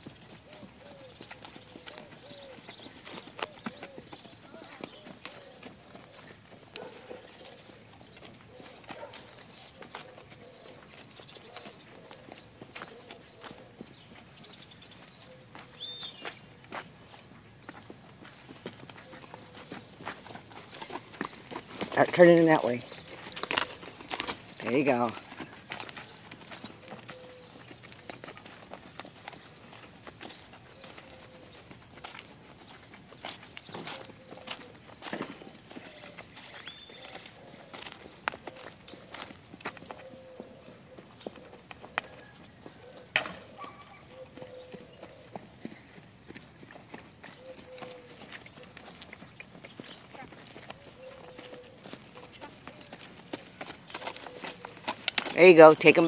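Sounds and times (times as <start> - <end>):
horse hoofbeats on sand: 0.0 - 56.0.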